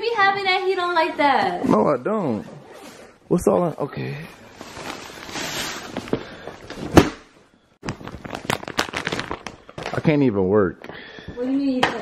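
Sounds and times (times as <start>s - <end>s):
plastic shopping bag rustling: 4.5s - 6.1s, 7.8s - 10.2s
plastic packaging crinkling: 7.8s - 10.2s.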